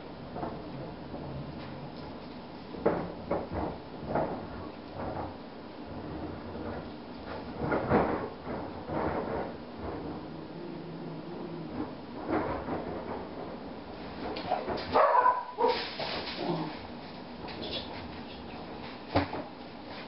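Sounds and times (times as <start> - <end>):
dog barking: 14.9 - 15.8.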